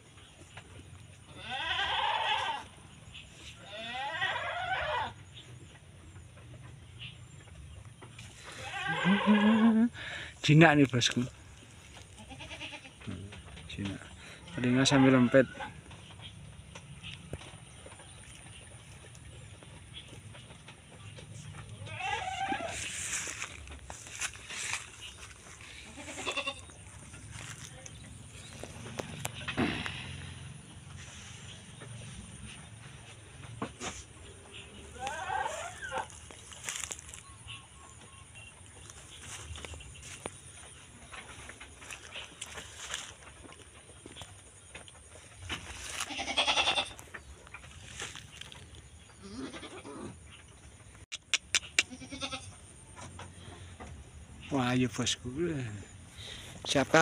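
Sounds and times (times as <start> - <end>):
goats bleating: 1.3 - 2.8, 3.6 - 5.2, 8.3 - 10.2, 11.9 - 13.2, 21.7 - 23.2, 23.9 - 28.0, 28.9 - 30.6, 34.6 - 37.2, 45.8 - 47.2, 49.2 - 50.2, 51.6 - 52.7.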